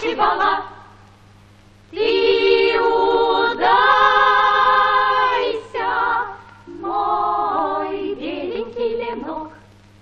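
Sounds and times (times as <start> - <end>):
unaccompanied choir singing: 0.0 - 0.8, 1.9 - 9.6.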